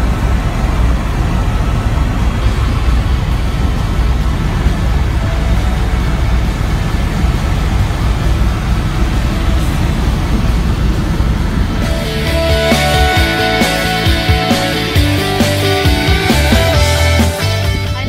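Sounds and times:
helicopter engine and rotor noise: 0.0s - 18.0s.

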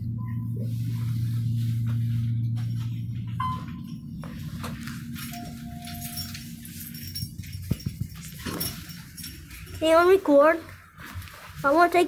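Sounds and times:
elevator hum: 0.0s - 11.8s.

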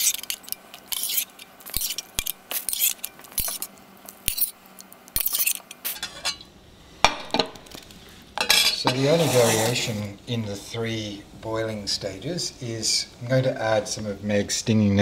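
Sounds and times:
metal spoon scraping saucepan: 0.0s - 3.7s, 5.2s - 6.4s, 8.4s - 10.0s.

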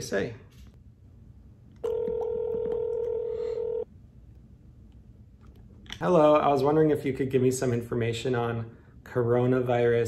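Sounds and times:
telephone ringback tone: 1.8s - 3.9s.

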